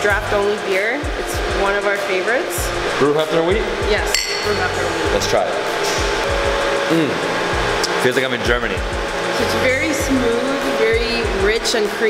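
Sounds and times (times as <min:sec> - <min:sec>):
steady whirring noise: 0:00.0 - 0:12.0
man saying mmm: 0:06.9 - 0:07.3.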